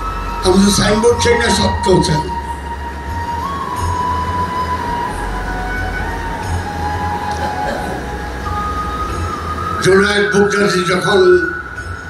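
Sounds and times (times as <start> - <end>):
thin whistling tone: 0.0 - 12.0.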